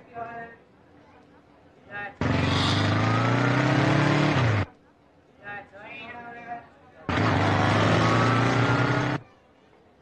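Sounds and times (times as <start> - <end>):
motorcycle engine accelerating: 2.2 - 4.7, 7.1 - 9.2.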